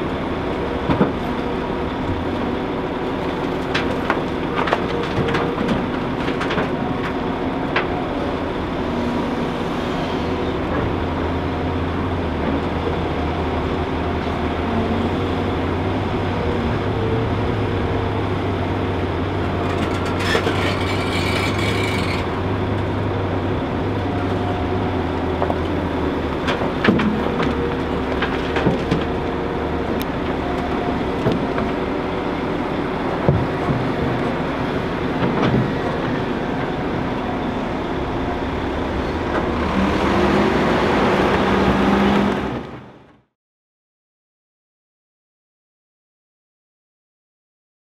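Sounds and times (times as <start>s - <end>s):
diesel engines running: 0.0s - 43.3s
soil dumped into truck: 19.5s - 22.4s.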